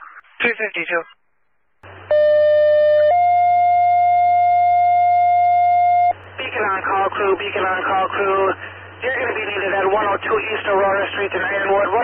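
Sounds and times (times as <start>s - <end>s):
low hum: 1.0s - 11.9s
two-tone pager tones: 2.1s - 6.2s.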